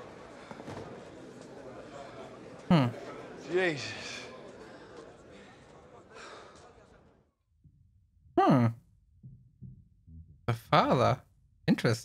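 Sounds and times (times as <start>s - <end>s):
faint breathy voice: 3.8s - 7.2s.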